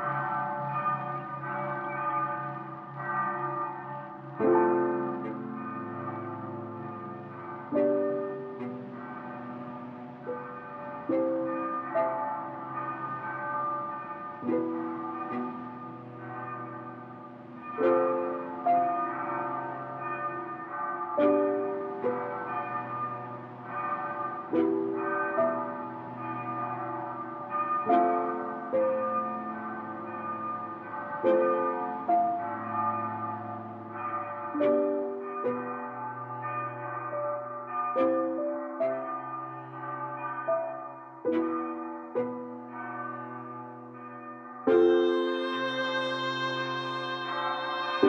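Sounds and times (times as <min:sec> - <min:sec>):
church bell tolling: 0:00.0 - 0:48.0.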